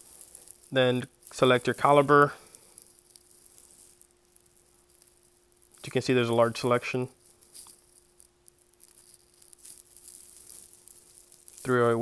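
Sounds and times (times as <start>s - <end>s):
faint crackles: 0.0s - 12.0s.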